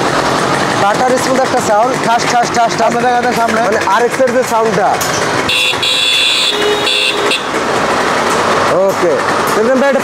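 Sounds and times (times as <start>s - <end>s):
motorcycle engine idling: 0.0s - 10.0s
vehicle horn beeping: 5.5s - 7.6s.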